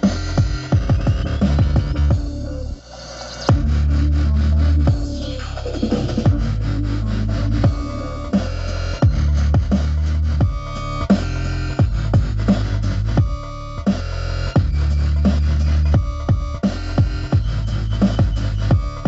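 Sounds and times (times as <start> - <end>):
dubstep through sound system: 0.0 - 19.0.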